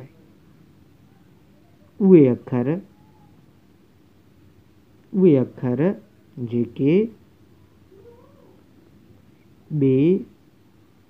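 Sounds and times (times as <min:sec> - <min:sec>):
man speaking loudly: 0:09.7 - 0:10.4.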